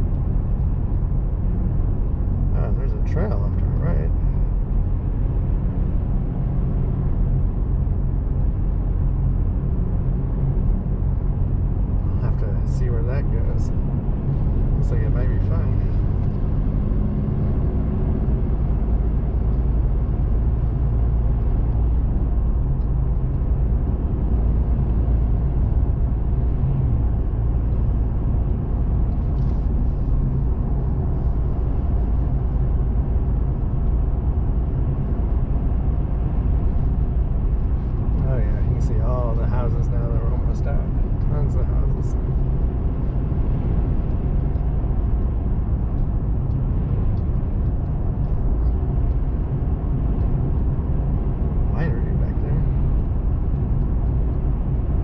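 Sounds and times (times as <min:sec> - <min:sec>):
car road noise: 0:00.0 - 0:55.0
engine drone: 0:00.0 - 0:55.0.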